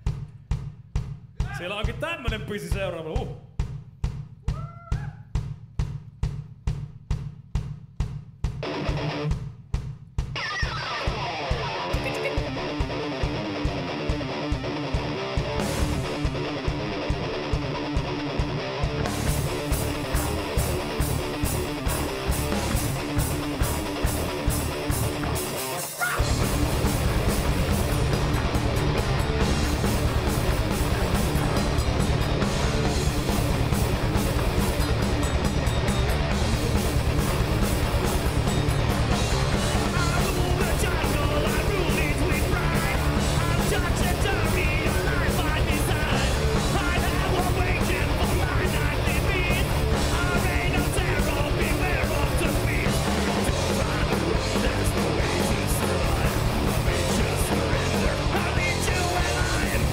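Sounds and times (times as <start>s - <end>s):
kick drum pulse: 0.0s - 10.4s
heavy metal band playing live: 8.6s - 9.4s, 10.4s - 59.9s.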